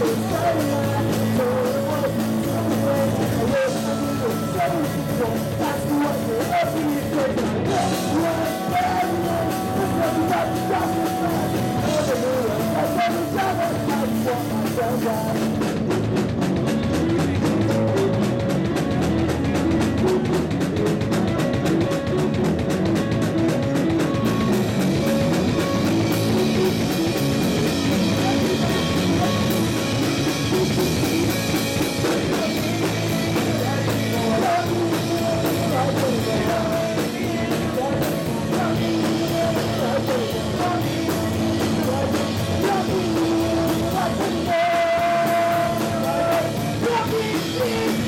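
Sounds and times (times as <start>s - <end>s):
person singing: 0.0s - 15.9s, 16.6s - 48.0s
drum kit: 0.0s - 48.0s
electric bass guitar: 0.0s - 48.0s.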